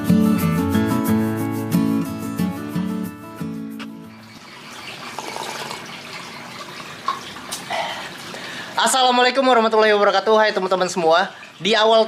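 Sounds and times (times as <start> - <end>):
acoustic guitar music: 0.0 - 7.7
running water: 3.8 - 12.0.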